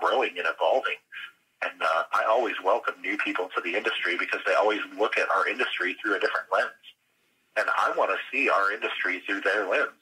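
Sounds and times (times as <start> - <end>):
man talking: 0.0 - 7.0, 7.6 - 10.0.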